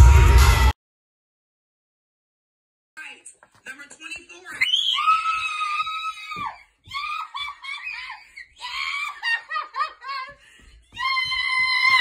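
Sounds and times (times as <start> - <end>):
child screaming: 4.6 - 9.2
child squealing: 4.6 - 9.2.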